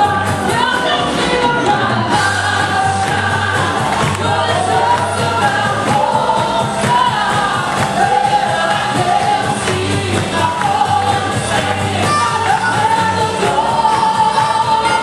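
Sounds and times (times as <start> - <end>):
instrumental accompaniment: 0.0 - 15.0
other voices singing: 0.0 - 15.0
woman singing gospel: 0.0 - 15.0.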